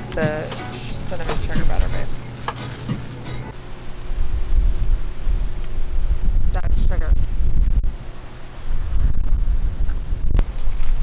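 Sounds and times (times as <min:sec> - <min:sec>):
plastic bag crinkling: 0:00.0 - 0:03.5
wind buffeting microphone: 0:04.0 - 0:11.0.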